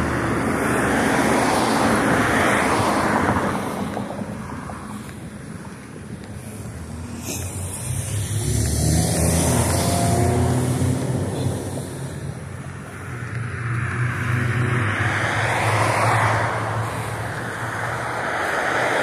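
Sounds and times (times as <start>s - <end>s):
tyre noise of passing vehicle: 0.0s - 19.0s
vehicle engine hum: 0.0s - 19.0s.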